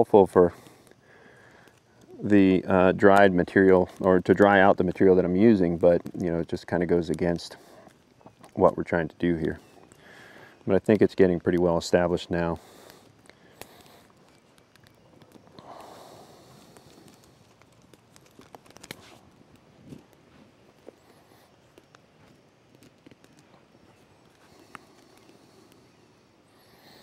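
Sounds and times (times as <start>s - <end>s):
twigs snapping and rustling: 2.9s - 26.0s.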